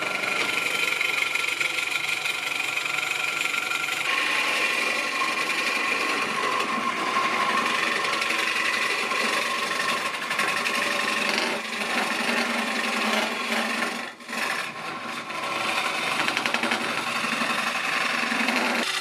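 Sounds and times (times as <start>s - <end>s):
gouge scraping spinning wood: 0.0s - 19.0s
wood lathe whine: 0.0s - 19.0s.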